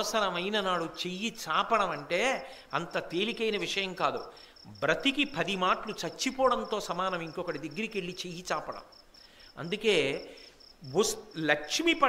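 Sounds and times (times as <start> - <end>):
man speaking: 0.0 - 8.9, 9.6 - 12.0
cricket chirping: 0.0 - 12.0.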